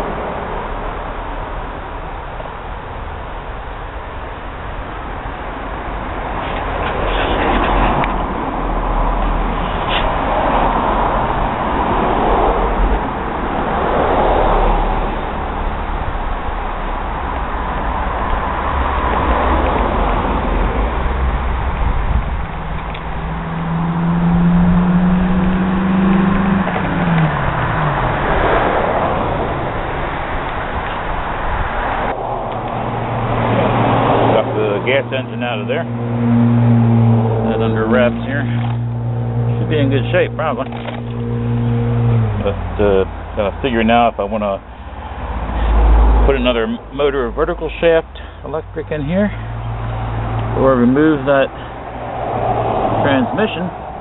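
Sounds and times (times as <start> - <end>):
vehicles passing: 0.0 - 54.0
engine pitch dropping: 5.8 - 54.0.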